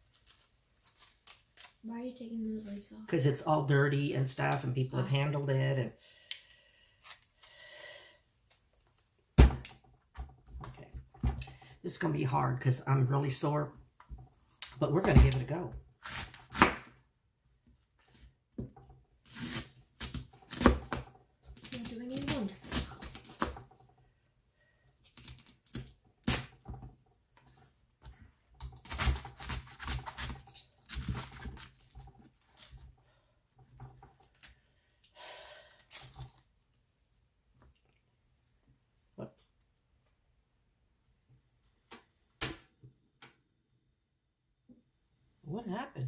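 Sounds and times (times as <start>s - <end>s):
knife slicing cabbage: 16.0s - 16.9s, 19.3s - 23.6s, 28.6s - 32.0s.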